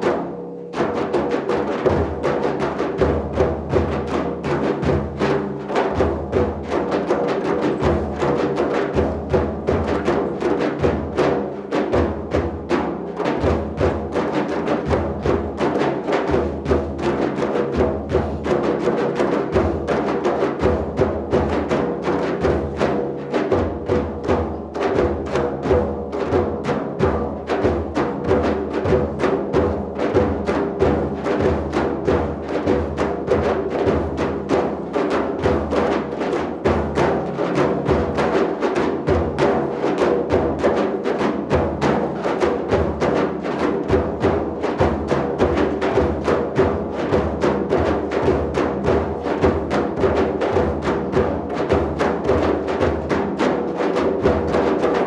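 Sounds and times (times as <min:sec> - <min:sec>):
frame drums playing fast rhythm: 0:00.0 - 0:55.0.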